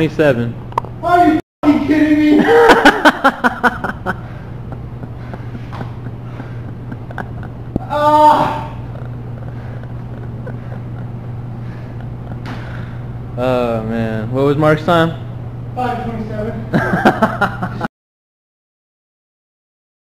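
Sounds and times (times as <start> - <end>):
low hum: 1.7 - 17.9
man groaning: 2.1 - 2.9, 7.8 - 8.9
man breathing hard: 4.1 - 6.9, 9.4 - 13.2.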